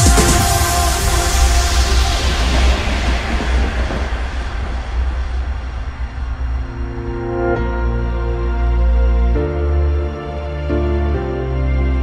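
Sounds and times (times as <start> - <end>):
swept noise wash: 0.0 - 10.8
deep bass drone: 0.0 - 12.0
held synth chords: 6.2 - 12.0.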